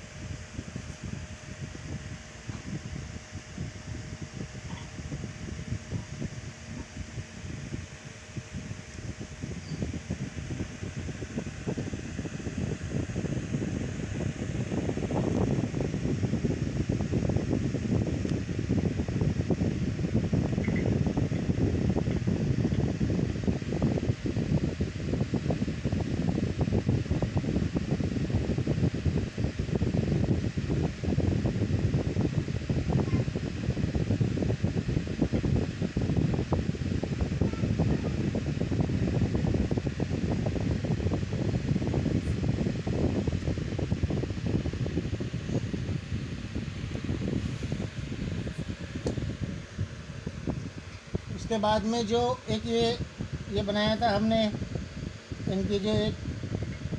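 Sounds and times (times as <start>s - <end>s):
air buffeting microphone: 0.0s - 56.9s
fan rumbling: 0.0s - 56.9s.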